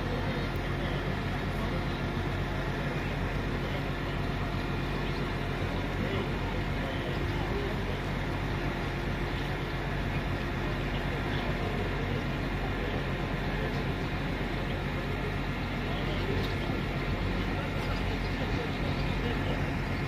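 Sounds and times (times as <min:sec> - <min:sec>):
train diesel engine droning: 0:00.0 - 0:20.0.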